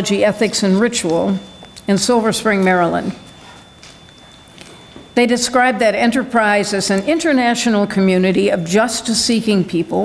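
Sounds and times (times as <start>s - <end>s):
woman talking: 0.0s - 3.3s, 5.2s - 10.0s.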